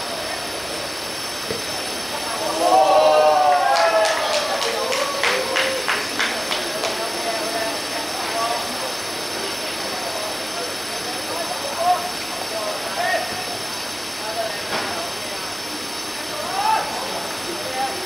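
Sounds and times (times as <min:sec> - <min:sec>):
steady hiss: 0:00.0 - 0:18.0
distant shouts of players: 0:02.2 - 0:06.2, 0:16.3 - 0:18.0.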